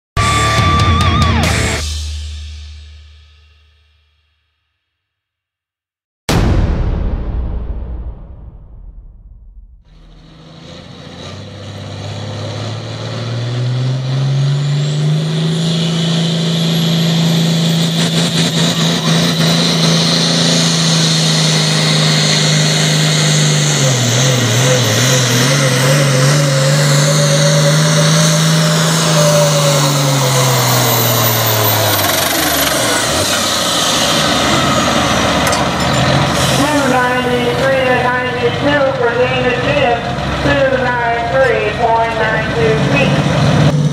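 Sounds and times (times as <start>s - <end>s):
high engine whine: 6.3s - 43.9s
tractor engine running flat out: 6.3s - 43.9s.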